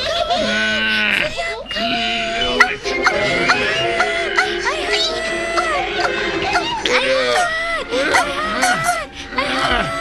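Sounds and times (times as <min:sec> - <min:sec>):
cartoon background music: 0:00.0 - 0:10.0
wavering bleat-like vocal cry: 0:00.4 - 0:10.0.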